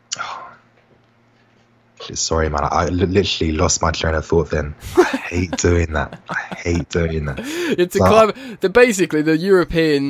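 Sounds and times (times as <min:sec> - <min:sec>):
faint low hum: 0:00.0 - 0:10.0
man breathy exhale: 0:07.4 - 0:07.8.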